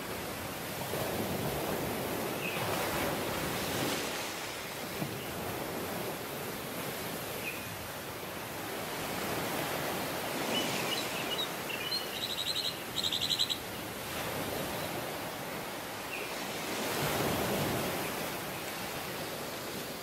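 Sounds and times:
ocean surf on sandy beach: 0.0 - 20.0
bird chirping and chattering: 10.9 - 13.6.

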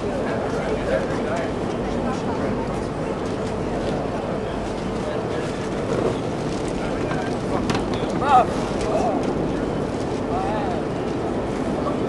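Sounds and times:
steady rumbling background noise: 0.0 - 12.0.

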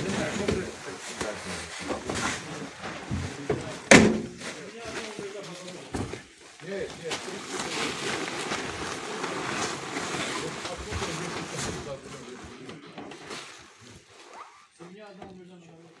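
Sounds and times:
plastic tarpaulin rustling: 0.0 - 16.0.

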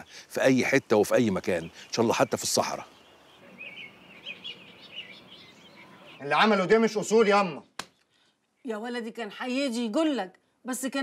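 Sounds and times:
faint outdoor background noise: 0.0 - 11.0
small birds chirping: 0.0 - 11.0.

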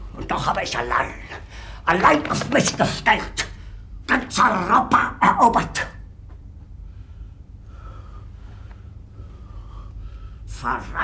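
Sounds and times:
low steady hum: 0.0 - 11.0
man breathing hard: 6.8 - 10.5.

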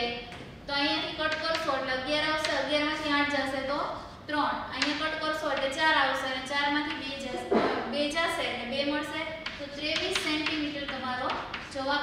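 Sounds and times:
woman talking: 0.0 - 12.0
chalk tapping and scraping on blackboard: 9.4 - 11.8.

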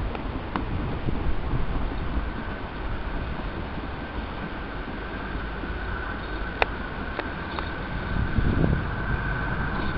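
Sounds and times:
approaching train rumble: 0.0 - 9.9
faint high whine: 0.0 - 9.9
wind buffeting microphone: 0.0 - 9.9.

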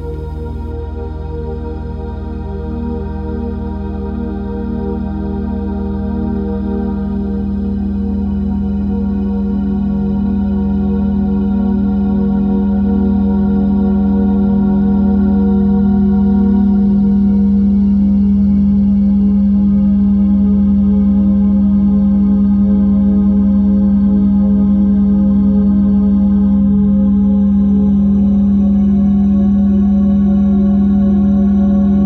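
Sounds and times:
synthesized low meditation tone: 0.0 - 32.0.

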